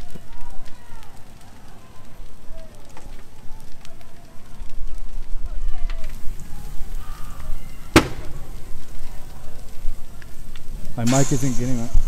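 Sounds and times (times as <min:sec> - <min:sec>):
fire rumbling and crackling: 0:00.0 - 0:12.0
sharp bang: 0:08.0 - 0:08.8.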